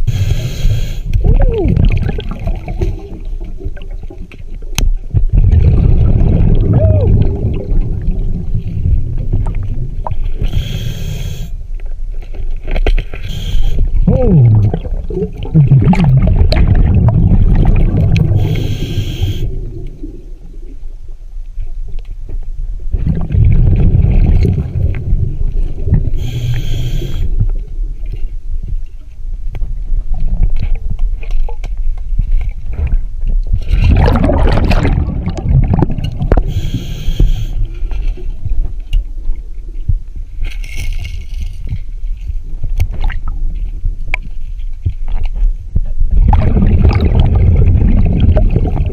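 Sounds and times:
regulator hiss: 0.0 - 1.1, 10.4 - 11.5, 18.4 - 19.5, 26.2 - 27.3, 36.4 - 37.6
gurgle of exhaled bubbles: 1.1 - 4.4, 5.0 - 10.8, 13.9 - 20.8, 22.9 - 27.5, 32.7 - 37.4, 46.0 - 48.9.

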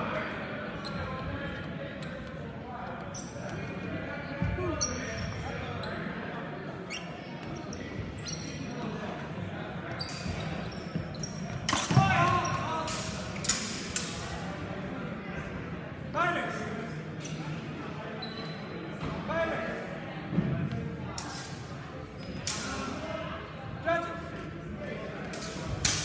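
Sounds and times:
echoing chatter in gym: 0.0 - 26.0.

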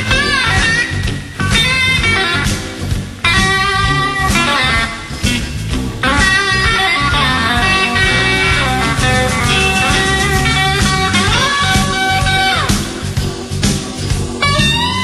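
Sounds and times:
electric guitar bending notes: 0.0 - 15.0
live electric blues band: 0.0 - 15.0.

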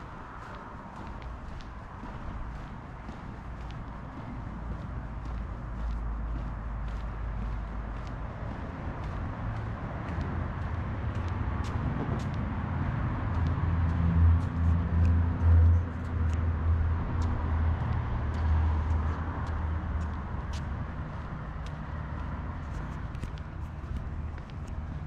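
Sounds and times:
footsteps on pavement: 0.0 - 25.0.

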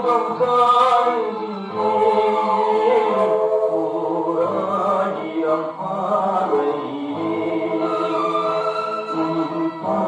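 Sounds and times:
man singing film song on television: 0.0 - 10.0.

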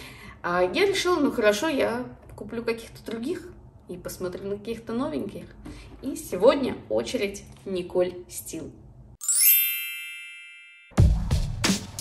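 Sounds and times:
tinkling bell chime: 9.2 - 11.0.

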